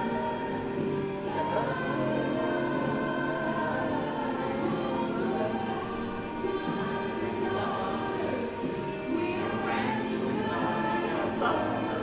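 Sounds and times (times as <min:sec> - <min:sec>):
choir singing worship song: 0:00.0 - 0:12.0.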